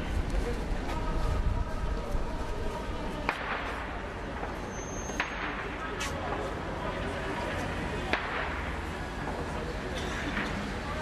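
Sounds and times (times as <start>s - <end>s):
crowd voices: 0.0s - 11.0s
sharp cracks with echo: 3.2s - 4.1s, 5.1s - 6.1s, 8.0s - 8.9s.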